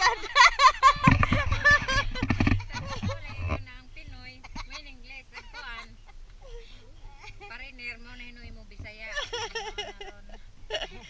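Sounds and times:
women laughing: 0:00.0 - 0:07.8, 0:09.0 - 0:11.0
women talking: 0:00.0 - 0:11.0.

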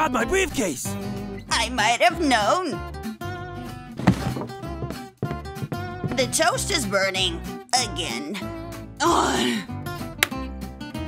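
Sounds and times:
plucked guitar music: 0:03.0 - 0:08.3.

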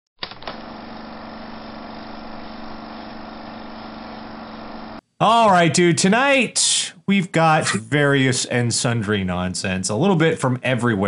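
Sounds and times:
buzzing hum with low tone: 0:00.4 - 0:05.0.

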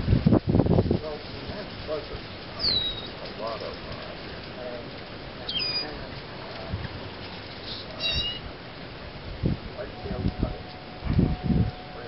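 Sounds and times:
hummingbird calls: 0:02.2 - 0:03.3, 0:05.4 - 0:06.2, 0:07.0 - 0:08.5.

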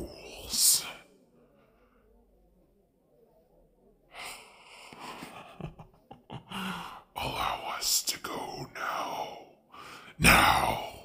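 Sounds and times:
person whispering raspily: 0:00.0 - 0:01.2, 0:04.1 - 0:05.5, 0:06.4 - 0:11.0.

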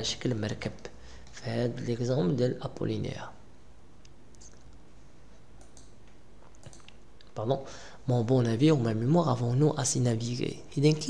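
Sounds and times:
steady low hum: 0:00.0 - 0:11.0
computer mouse clicks: 0:05.6 - 0:07.3.

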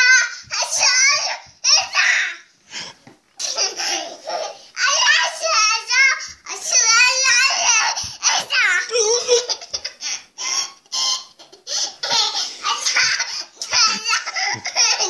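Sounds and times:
toddler girl laughing: 0:03.4 - 0:04.6, 0:09.0 - 0:10.0, 0:11.2 - 0:15.0.

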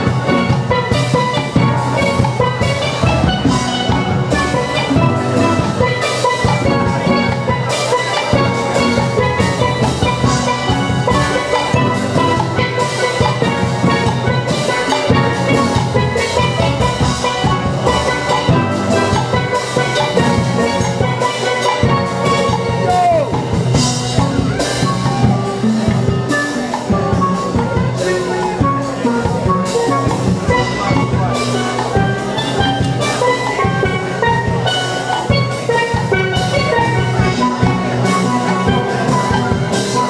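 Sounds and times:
steady drum beat: 0:00.0 - 0:40.0
steelpans playing melody: 0:00.0 - 0:40.0.

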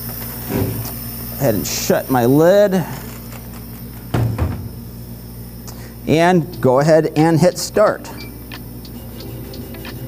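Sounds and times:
steady low hum: 0:00.0 - 0:10.0
hinged lid thumping shut: 0:04.1 - 0:04.8.

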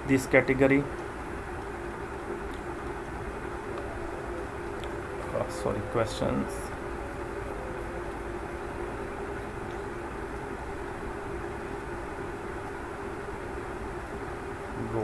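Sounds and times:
faint hum: 0:00.0 - 0:15.0.

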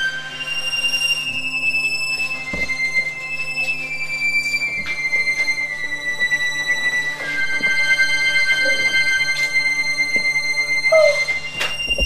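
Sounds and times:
high whistle-like tone: 0:10.6 - 0:12.0.

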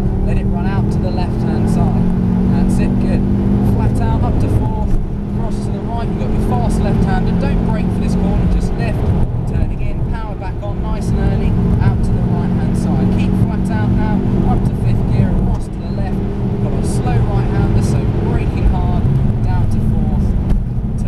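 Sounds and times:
road and tyre rumble: 0:00.0 - 0:21.0
turbocharged car engine: 0:00.0 - 0:21.0.

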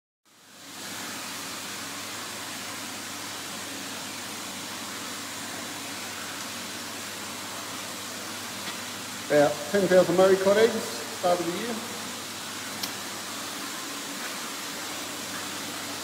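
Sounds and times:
rushing water: 0:00.5 - 0:16.0.

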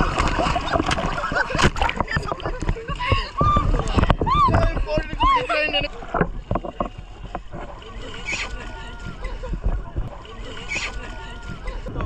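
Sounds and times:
river water splashing: 0:00.0 - 0:12.0.

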